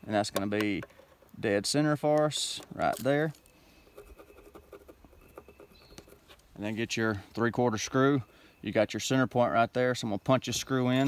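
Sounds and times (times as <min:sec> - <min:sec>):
pencil scratching on wood: 0:03.9 - 0:06.4.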